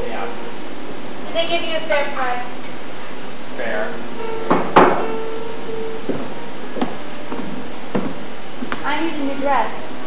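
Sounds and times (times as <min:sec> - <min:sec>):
faint steady hum: 0:00.0 - 0:10.0
footsteps on stage floor: 0:04.5 - 0:09.0.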